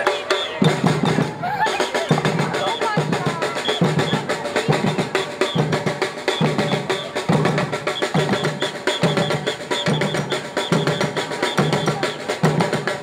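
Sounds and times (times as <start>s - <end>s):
fast strokes on small drums: 0.0s - 13.0s
high drum accent: 0.0s - 13.0s.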